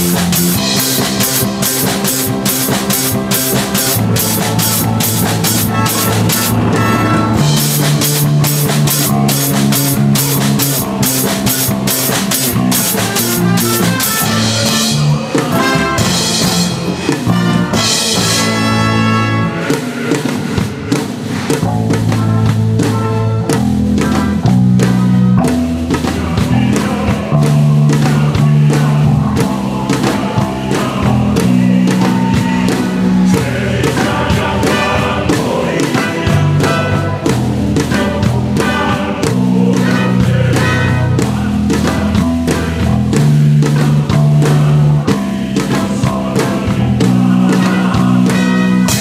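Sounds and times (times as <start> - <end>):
drum kit and cymbals: 0.0 - 49.0
electric bass guitar line: 0.0 - 49.0
live band playing: 0.0 - 49.0.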